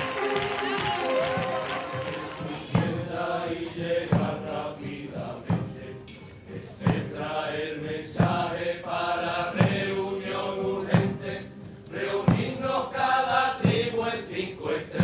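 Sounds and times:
male chorus chanting: 0:00.0 - 0:15.0
slow steady drum beat: 0:00.0 - 0:15.0.

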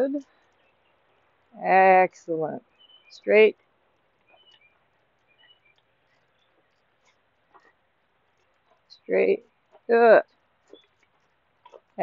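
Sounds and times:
faint outdoor ambience: 0:00.0 - 0:12.0
faint short bird chirps: 0:04.2 - 0:06.8.

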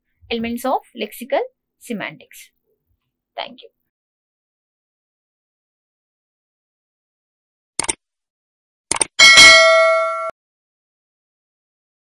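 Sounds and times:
bright bell chime: 0:09.2 - 0:10.4.

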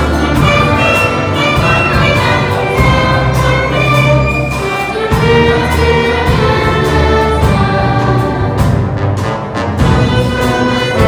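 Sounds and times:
youth choir singing: 0:00.0 - 0:08.8
orchestra of strings and brass: 0:00.0 - 0:11.0.

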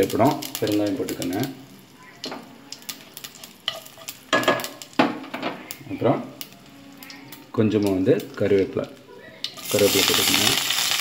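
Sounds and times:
spices sizzling in hot oil: 0:00.0 - 0:11.0.

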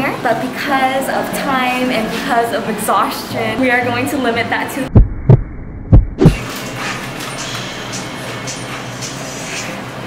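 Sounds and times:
muffled heartbeat thumps: 0:04.9 - 0:06.4.

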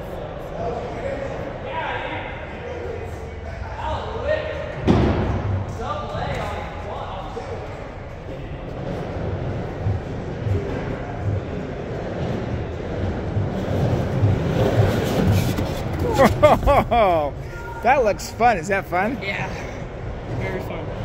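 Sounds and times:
loud thud: 0:04.8 - 0:05.5
skateboard wheels rolling on wood: 0:08.6 - 0:16.8.

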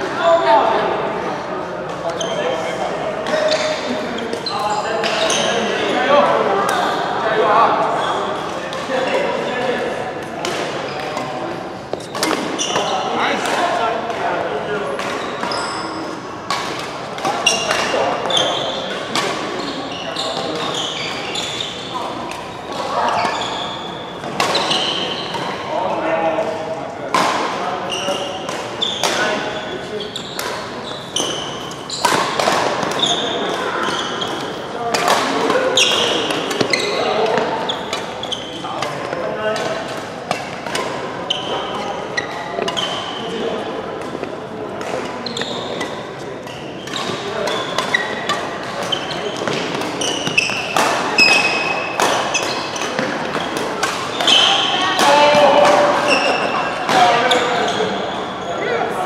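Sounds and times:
voices echoing in hall: 0:00.0 - 0:59.0
shoe squeaks: 0:02.2 - 0:02.6, 0:03.3 - 0:05.6, 0:11.9 - 0:13.3, 0:15.2 - 0:16.2, 0:17.4 - 0:18.9, 0:19.6 - 0:25.5, 0:27.9 - 0:32.4, 0:33.0 - 0:34.6, 0:35.7 - 0:38.7, 0:41.3 - 0:43.3, 0:45.1 - 0:55.3, 0:56.0 - 0:58.7
racket striking shuttlecock: 0:46.9 - 0:56.0.

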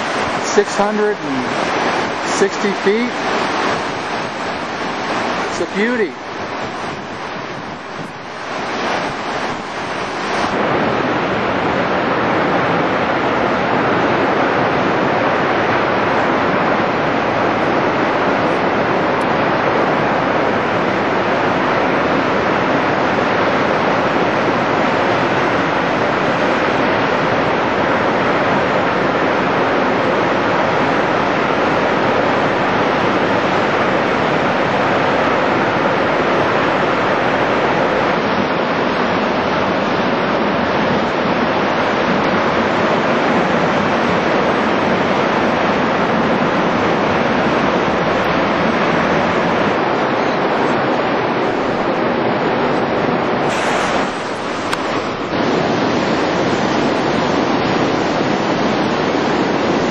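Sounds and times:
waterfall rushing: 0:00.0 - 0:59.9.

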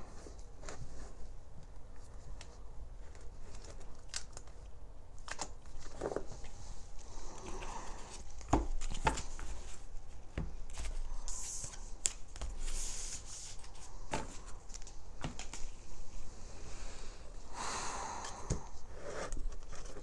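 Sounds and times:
card decks being handled: 0:07.3 - 0:15.8.

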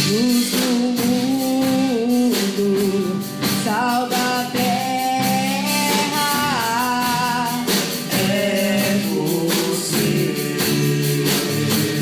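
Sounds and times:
bass guitar: 0:00.0 - 0:12.0
drum kit with cymbal strokes: 0:00.0 - 0:12.0
electric guitar: 0:00.0 - 0:12.0
young voices singing together: 0:00.0 - 0:12.0.

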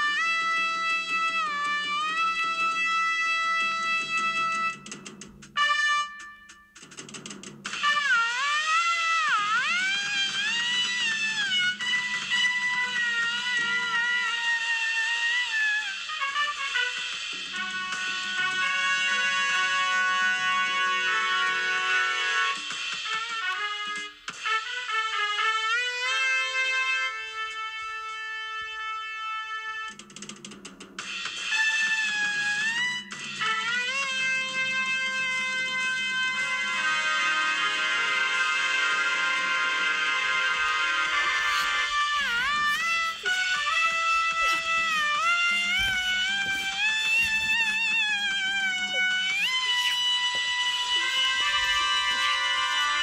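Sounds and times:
jazz trumpet lead: 0:00.0 - 0:06.8, 0:07.6 - 0:30.1, 0:31.0 - 0:53.0
quiet accompaniment: 0:16.1 - 0:53.0.

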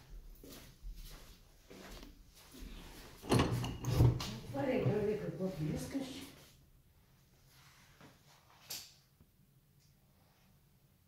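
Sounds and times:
soft footsteps on laminate floor: 0:00.0 - 0:03.2
door clattering open: 0:03.2 - 0:04.4.

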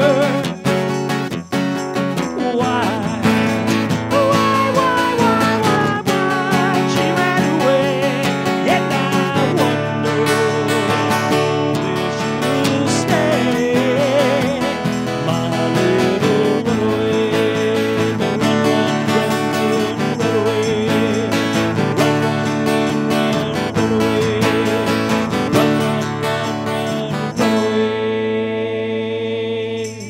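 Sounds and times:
voices singing: 0:00.0 - 0:00.9, 0:02.2 - 0:30.0
strummed acoustic guitar: 0:00.0 - 0:30.0.

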